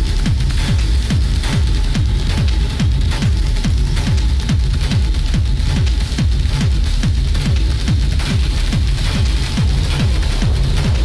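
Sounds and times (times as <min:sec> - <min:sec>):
hissy hi-hats: 0:00.0 - 0:11.0
kick drum: 0:00.0 - 0:11.0
noisy high percussion: 0:00.0 - 0:11.0
techno music: 0:00.0 - 0:11.0.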